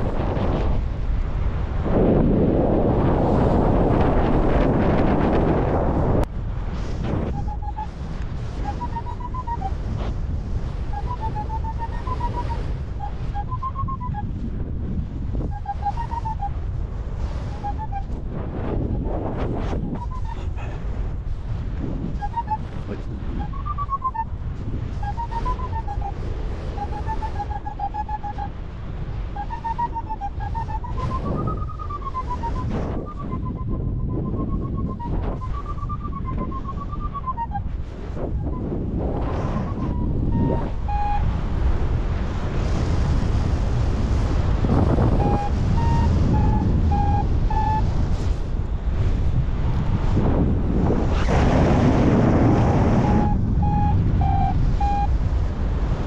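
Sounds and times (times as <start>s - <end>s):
wind noise on microphone: 0.0s - 56.0s
variometer beeping: 8.6s - 9.8s, 39.6s - 41.3s, 53.0s - 55.2s.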